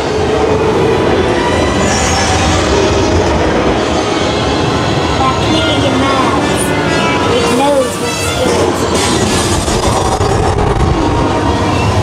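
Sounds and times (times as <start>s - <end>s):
loud rumbling roar: 0.0s - 12.0s
faint voices: 5.0s - 9.0s.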